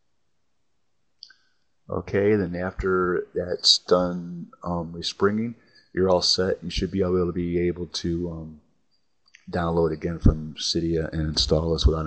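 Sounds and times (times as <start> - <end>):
man speaking: 1.9 - 8.6, 9.5 - 12.0.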